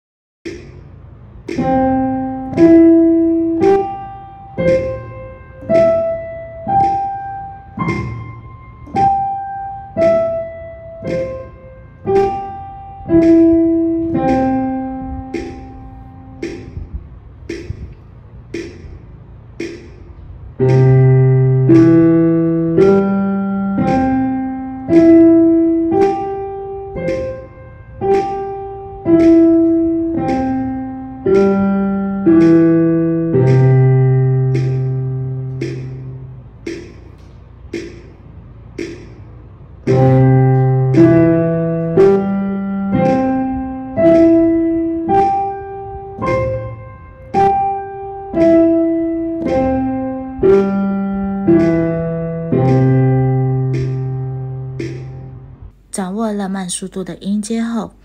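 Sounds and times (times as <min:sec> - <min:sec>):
piano arpeggio: 0:01.4 - 0:17.8, 0:20.5 - 0:37.2, 0:39.7 - 0:55.8
metronome clicks: 0:11.0 - 0:18.0, 0:25.9 - 0:38.2, 0:48.3 - 0:55.4.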